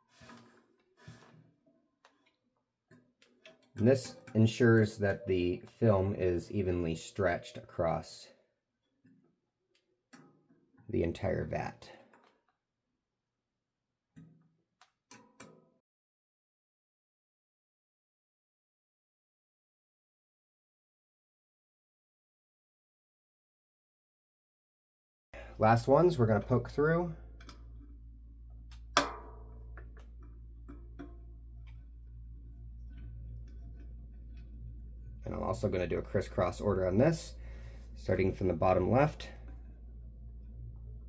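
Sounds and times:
low steady hum: 3.4s - 8.4s, 25.4s - 41.0s.

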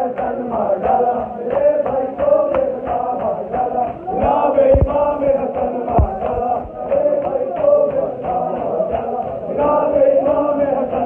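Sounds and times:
men chanting in unison: 0.0s - 11.0s
deep thump: 4.2s - 5.2s, 5.9s - 6.8s.

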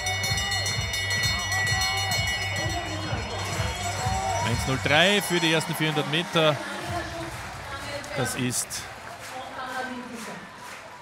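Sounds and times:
music with low pulsing beat: 0.0s - 4.9s
brass bell ringing: 0.0s - 5.4s.

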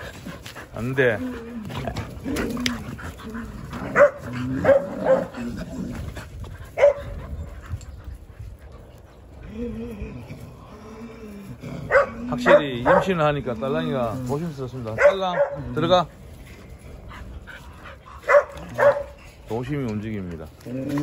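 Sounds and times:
dogs barking and yipping: 0.0s - 9.4s, 11.8s - 13.3s, 14.8s - 15.8s, 16.9s - 19.4s.

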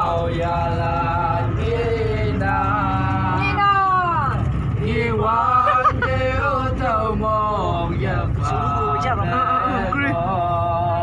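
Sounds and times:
bus rumble: 0.0s - 11.0s
men chanting in a group: 0.0s - 11.0s.

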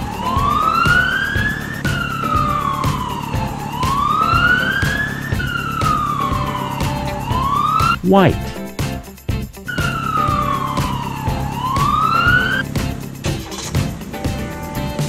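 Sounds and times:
police siren wailing: 0.0s - 8.3s, 10.2s - 12.6s
background music: 0.0s - 15.0s.

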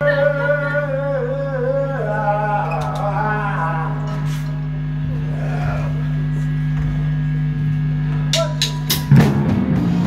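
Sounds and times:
amplifiers buzzing with mains hum: 0.0s - 10.0s.

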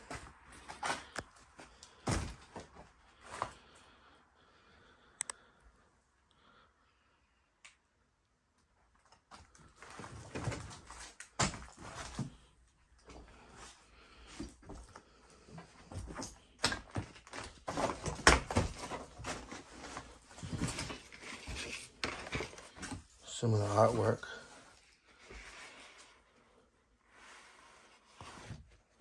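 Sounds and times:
knocks and bumps of handling: 15.8s - 23.1s.

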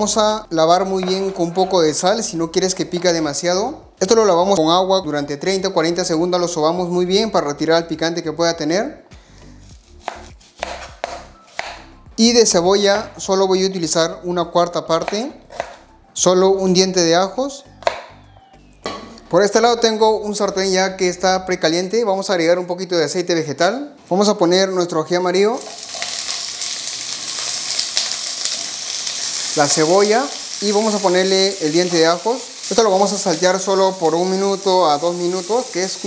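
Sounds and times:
knife striking plastic cutting board: 10.0s - 11.8s, 15.0s - 15.8s, 17.8s - 18.1s
peppers sizzling in hot oil: 25.6s - 36.0s.

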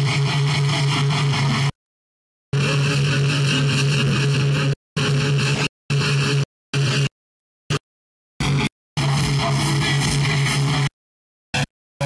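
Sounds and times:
distorted electric guitar drone: 0.0s - 1.8s, 2.5s - 11.7s.

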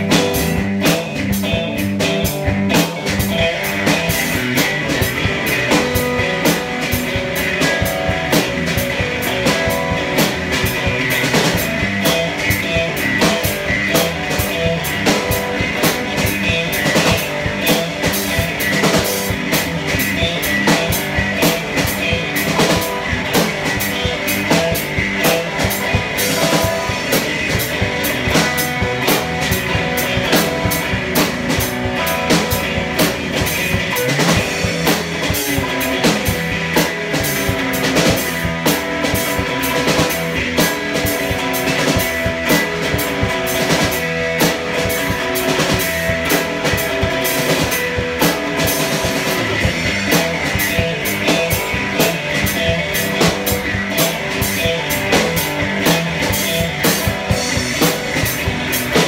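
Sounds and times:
drum kit beat: 0.0s - 59.0s
electric guitar: 0.0s - 59.0s.

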